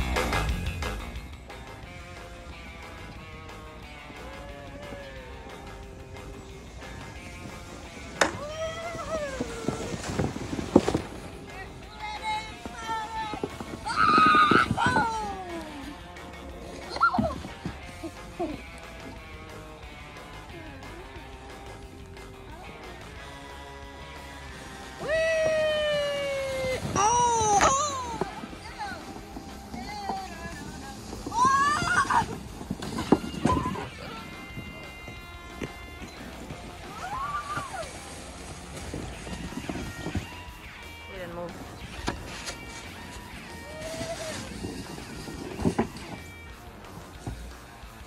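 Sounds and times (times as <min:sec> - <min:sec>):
background music: 0:00.0 - 0:48.0
children shouting: 0:12.0 - 0:15.9, 0:25.0 - 0:28.9, 0:31.3 - 0:32.4, 0:36.8 - 0:38.0.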